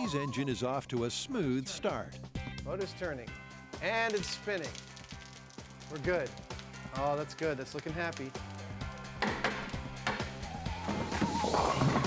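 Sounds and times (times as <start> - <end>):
background music with bass line: 0.0 - 12.0
sharp knocks: 9.2 - 10.3.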